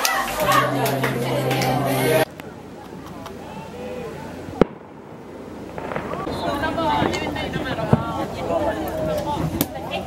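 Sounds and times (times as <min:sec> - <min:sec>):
firework bang: 0:04.6 - 0:09.8.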